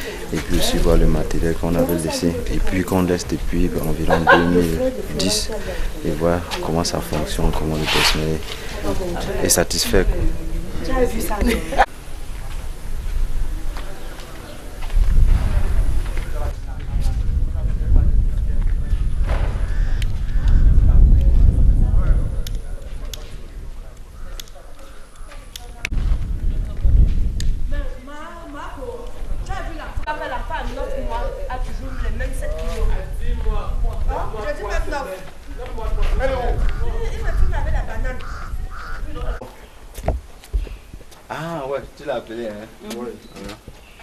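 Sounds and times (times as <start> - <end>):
faint voices talking: 0.0 - 11.9
low rumble on microphone: 11.8 - 24.3, 25.9 - 28.0
harsh rasping calls: 38.2 - 39.4.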